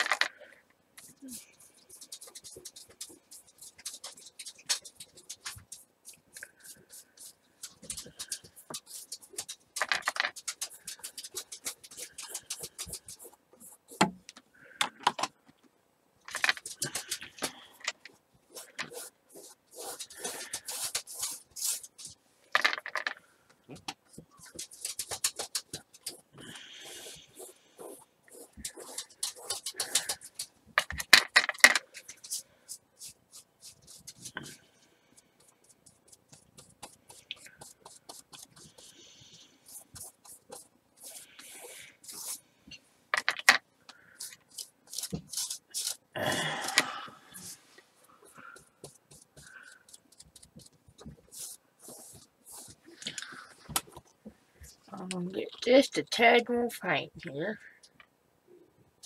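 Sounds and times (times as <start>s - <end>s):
paintbrush scrubbing on canvas: 1.0s - 9.7s, 18.5s - 22.2s, 24.1s - 30.5s, 35.4s - 42.5s, 47.4s - 53.0s.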